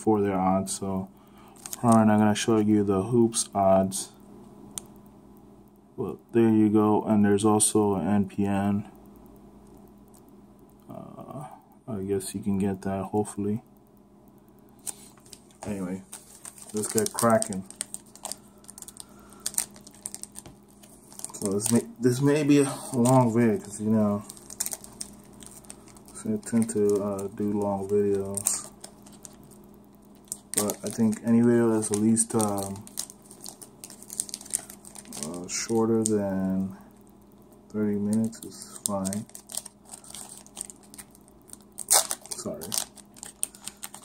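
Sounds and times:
foil wrapper crinkling: 1.4s - 2.6s, 14.8s - 29.6s, 30.2s - 36.8s, 37.8s - 44.0s
loud sharp wrapper tear: 16.2s - 20.4s, 38.2s - 44.0s.

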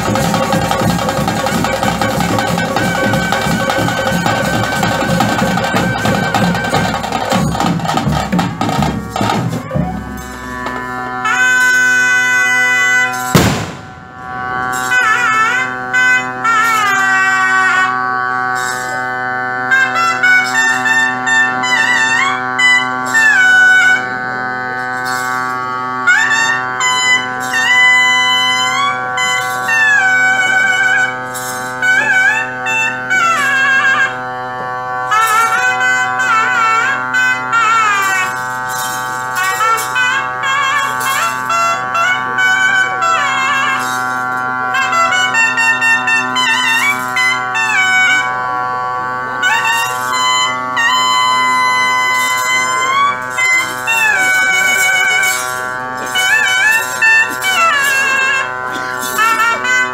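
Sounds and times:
steady held drone: 0.0s - 59.9s
trumpets playing trilled melody: 0.0s - 59.9s.

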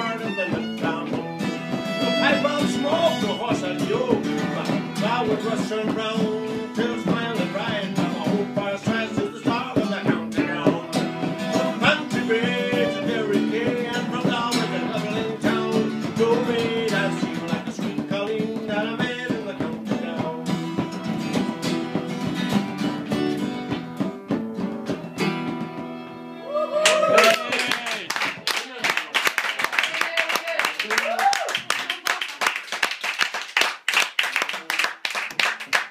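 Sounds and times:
fiddle playing a tune: 0.0s - 17.6s, 20.4s - 23.7s, 24.8s - 26.5s
frame drum beating: 0.0s - 26.0s
acoustic guitar strumming: 0.0s - 26.4s.

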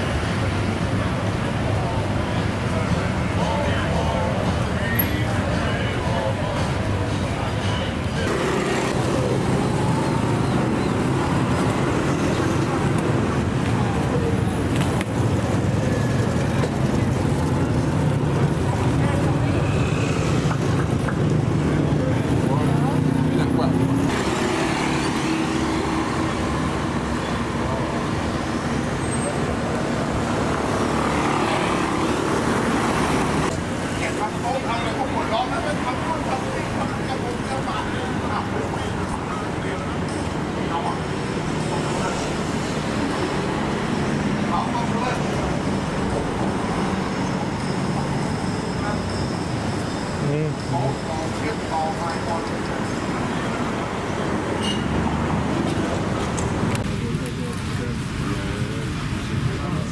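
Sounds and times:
street traffic: 0.0s - 59.9s
people's voices: 0.6s - 59.9s.

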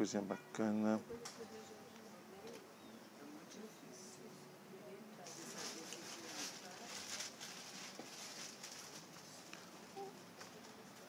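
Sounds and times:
faint rustling: 5.2s - 11.0s.

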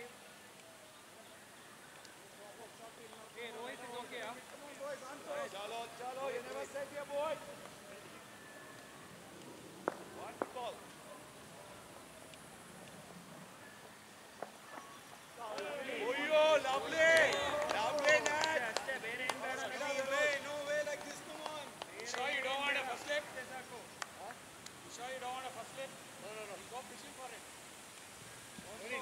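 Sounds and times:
men shouting and calling: 2.6s - 8.1s, 15.4s - 24.3s.

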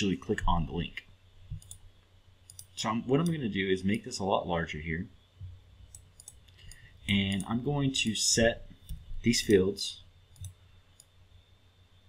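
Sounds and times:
faint mouse clicks: 1.5s - 1.8s, 2.5s - 3.4s, 5.4s - 8.2s, 10.3s - 11.2s.

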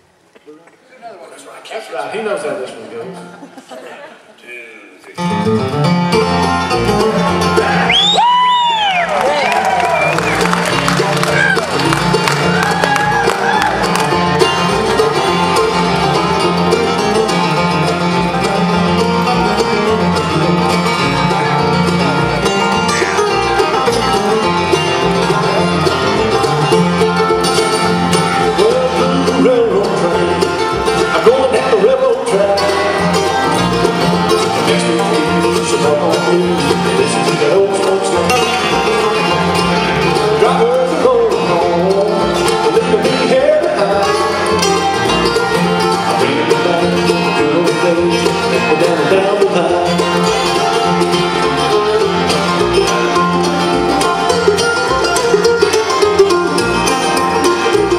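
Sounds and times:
mandolin: 1.4s - 57.9s
banjo: 1.7s - 4.4s, 5.1s - 57.9s
acoustic guitar: 5.0s - 57.9s
upright bass: 5.1s - 57.9s.

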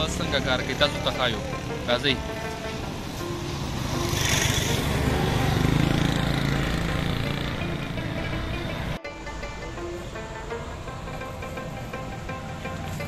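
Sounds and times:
motor vehicle passing by: 0.0s - 9.0s
background music: 0.0s - 13.0s.

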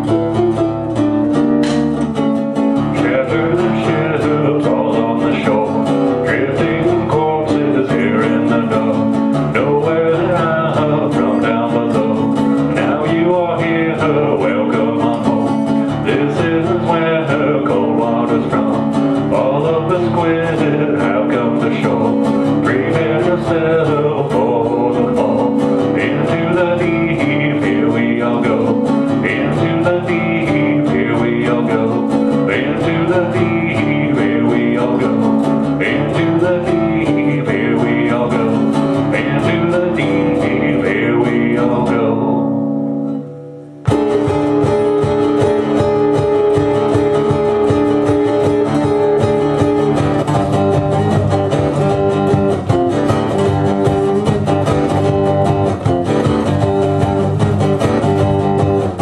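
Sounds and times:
resonator guitar picking: 0.0s - 59.0s.

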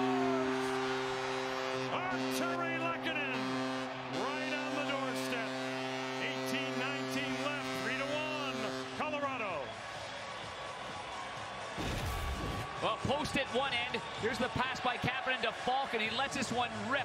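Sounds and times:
arena goal horn blaring: 0.0s - 9.9s
crowd cheering: 0.0s - 17.0s.

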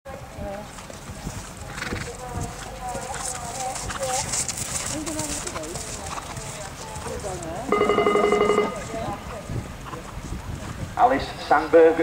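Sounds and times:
horse hoofbeats on grass: 0.1s - 10.9s.

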